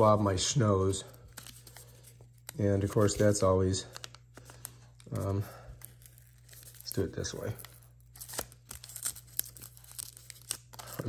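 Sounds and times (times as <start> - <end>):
paper wrapper tearing: 4.0 - 11.0.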